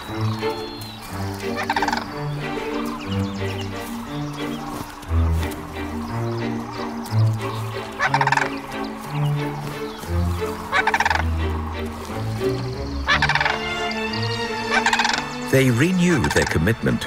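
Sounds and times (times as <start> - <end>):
low held background music: 0.0 - 17.0
crane rolling calls: 10.7 - 11.8, 13.0 - 16.4.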